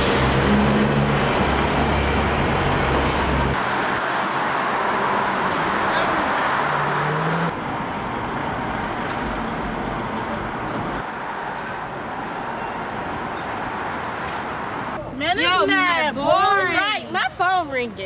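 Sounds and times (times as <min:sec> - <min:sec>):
large vehicle engine rumble: 0:00.0 - 0:12.2
street traffic noise: 0:00.0 - 0:18.0.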